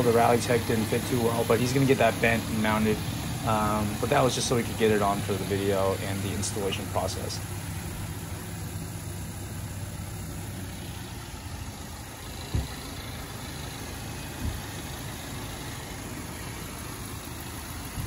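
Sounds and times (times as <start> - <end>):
car engine idling: 0.0 - 18.0
dull thumps: 12.4 - 12.8, 14.4 - 14.8.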